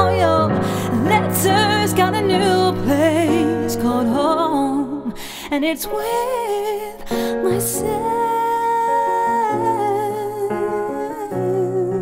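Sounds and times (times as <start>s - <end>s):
piano chords: 0.0s - 12.0s
woman singing long wordless note: 0.0s - 12.0s.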